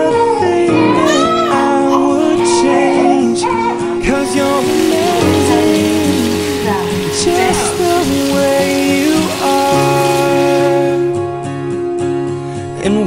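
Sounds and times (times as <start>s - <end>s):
tap water running: 3.4s - 11.2s
water splashing into steel sink: 4.0s - 11.1s.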